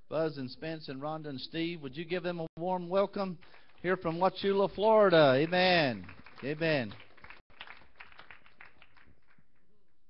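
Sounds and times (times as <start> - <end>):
faint applause: 5.4 - 9.4.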